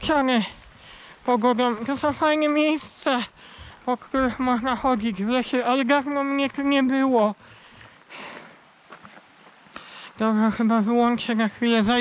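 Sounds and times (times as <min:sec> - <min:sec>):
footsteps on gravel: 0:00.0 - 0:12.0.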